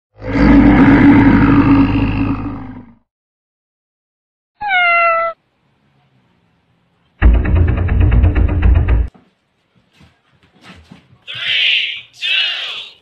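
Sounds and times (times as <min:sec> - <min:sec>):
animal-like roar: 0:00.2 - 0:03.0.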